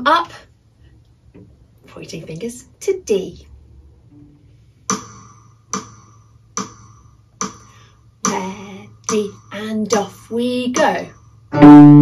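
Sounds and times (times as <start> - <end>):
metronome count-in clicks: 4.9 - 11.6.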